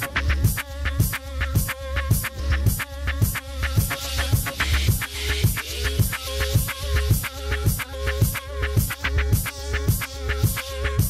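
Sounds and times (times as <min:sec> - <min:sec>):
electronic hip hop track: 0:00.0 - 0:11.0
steady drum beat: 0:00.0 - 0:11.0.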